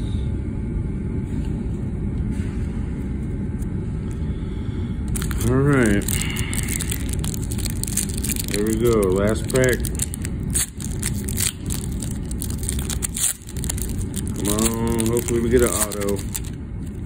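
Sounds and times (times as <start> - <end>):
steady low rumble: 0.0 - 17.0
foil wrapper crinkling and tearing: 5.1 - 17.0.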